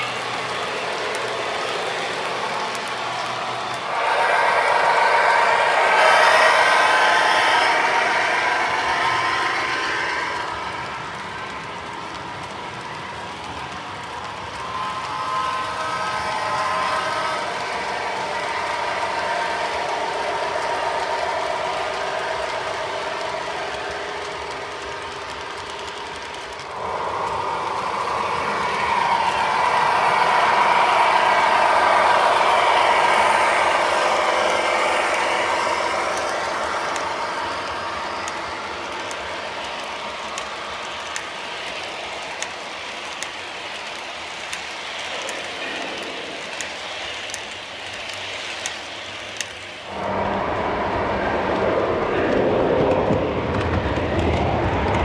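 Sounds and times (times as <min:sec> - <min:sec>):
model train wheels clattering: 0:00.0 - 0:49.9.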